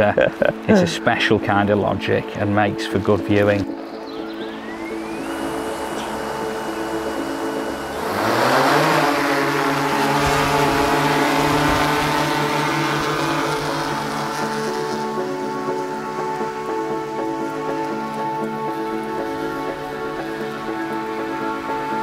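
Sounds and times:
drone hover hum: 3.8s - 22.0s
drone motors whining: 4.0s - 22.0s.

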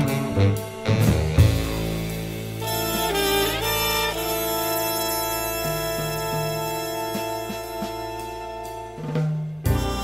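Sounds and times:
low bass line: 0.0s - 9.0s
jazz orchestra sustained chord: 0.0s - 10.0s.

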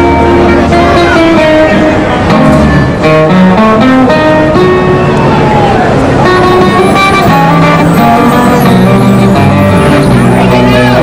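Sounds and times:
acoustic guitar melody with band: 0.0s - 11.0s.

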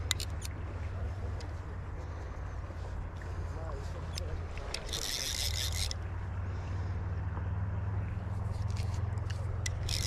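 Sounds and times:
fishing reel ratchet buzzing: 0.0s - 0.6s, 4.1s - 6.1s, 8.4s - 10.0s
steady low rumble: 0.0s - 10.0s.

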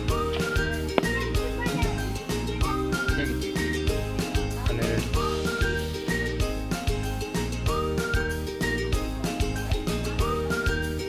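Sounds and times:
instrumental background music: 0.0s - 11.0s.

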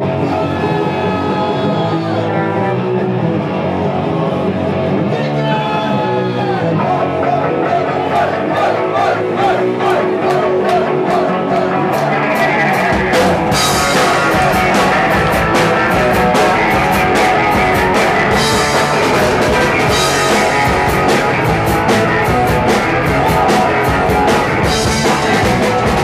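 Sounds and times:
distorted electric guitar: 0.0s - 26.0s
drum kit fast beat: 9.8s - 26.0s.

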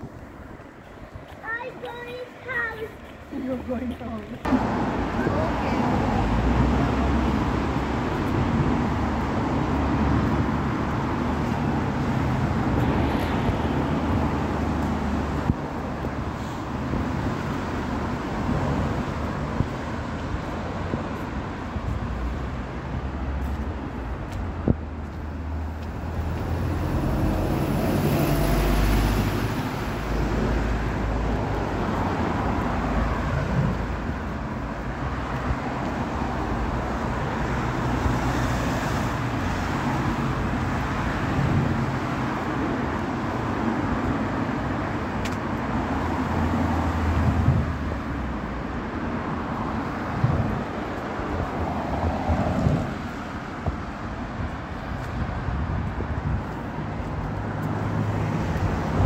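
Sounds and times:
cars passing in continuous rumble: 0.0s - 59.0s
louder vehicle passing: 25.3s - 45.0s.

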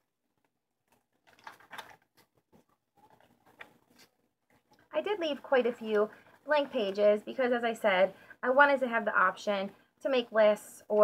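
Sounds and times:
paper pages rustling: 0.4s - 4.8s.

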